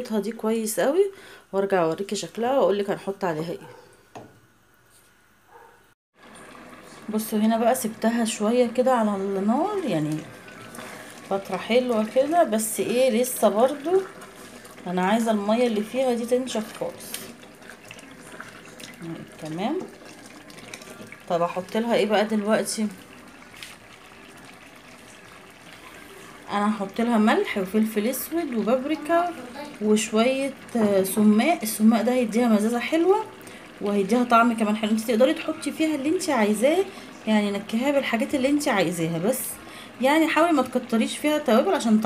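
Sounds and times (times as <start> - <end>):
paste bubbling in a pot: 6.2 - 39.0.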